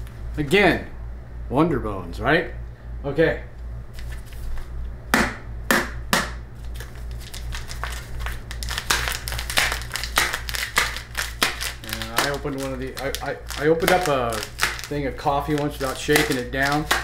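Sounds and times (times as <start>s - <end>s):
coffee bag crinkling: 6.6s - 17.0s.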